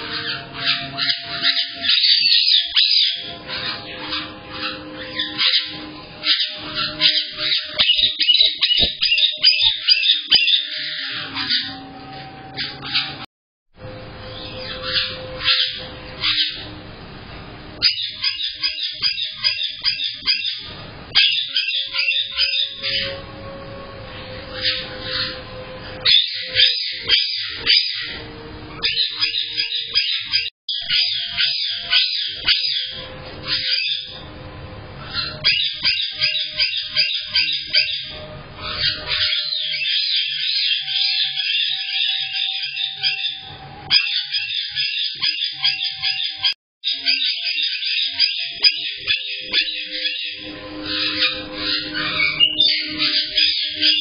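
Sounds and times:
parrots chattering and squawking: 0.0 - 54.0.

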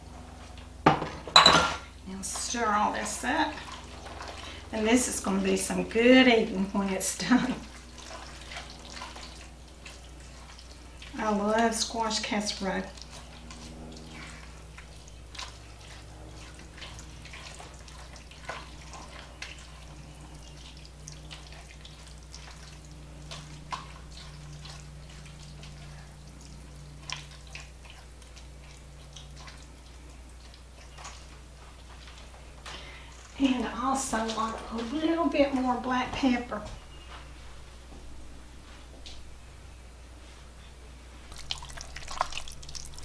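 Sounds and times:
steady low hum: 0.0 - 43.0
spatula stirring wet mixture: 2.1 - 36.3, 41.3 - 43.0.

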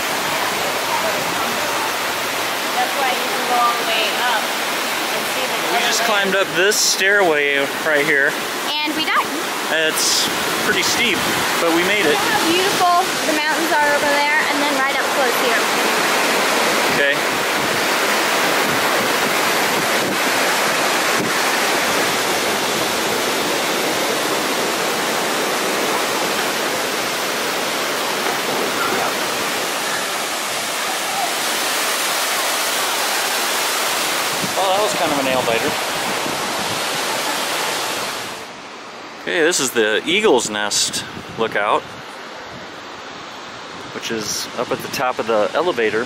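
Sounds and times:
waterfall rushing: 0.0 - 46.0
faint voices: 28.5 - 31.6.

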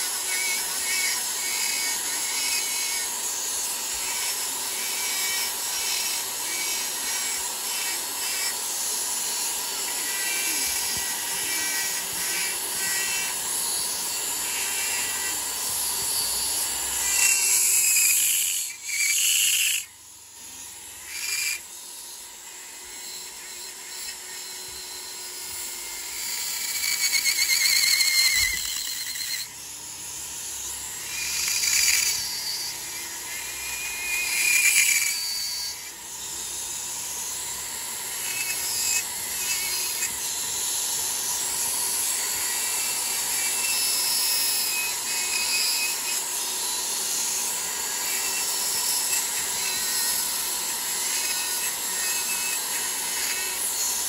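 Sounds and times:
rotary tool grinding: 0.0 - 54.0.

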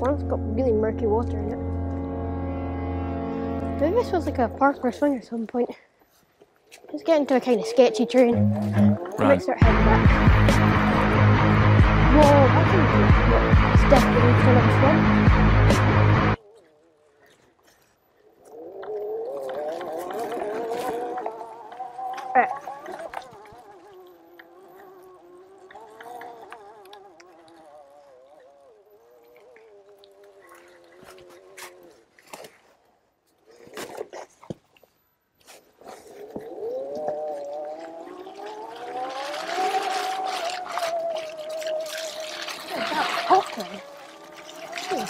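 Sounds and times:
tyres on wet muddy ground: 0.0 - 45.0
electric motorbike motor whining: 18.5 - 32.0, 36.1 - 45.0.

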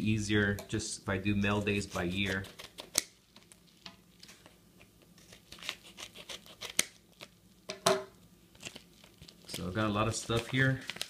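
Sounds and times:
padded envelope crinkling: 8.5 - 11.0.

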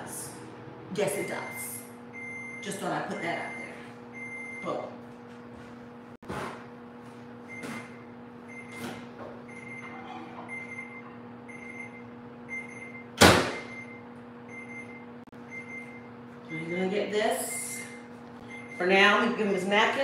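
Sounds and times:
oven timer beeping: 1.0 - 4.8, 7.5 - 8.8, 9.4 - 19.4
microwave door banging shut: 13.2 - 13.7.

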